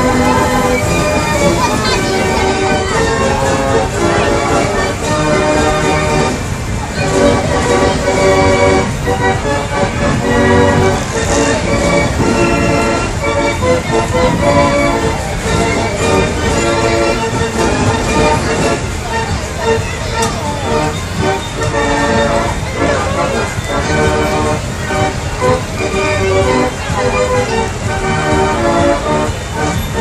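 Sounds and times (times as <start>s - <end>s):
fairground organ music: 0.0s - 30.0s.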